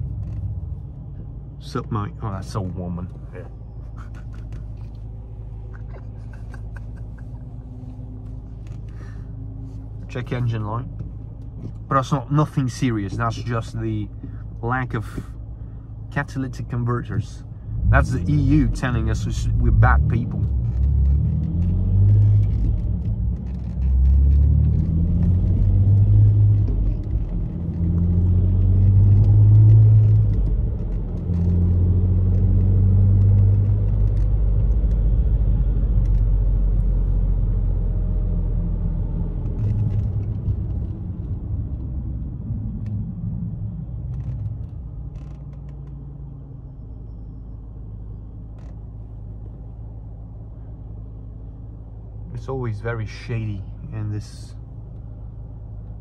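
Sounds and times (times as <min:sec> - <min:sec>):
car engine accelerating hard: 0:17.6 - 0:45.4.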